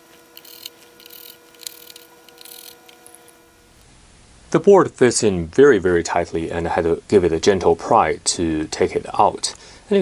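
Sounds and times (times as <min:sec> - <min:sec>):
faint steady hum: 0:00.0 - 0:10.0
screwdriver clicks and scratches: 0:00.1 - 0:03.3.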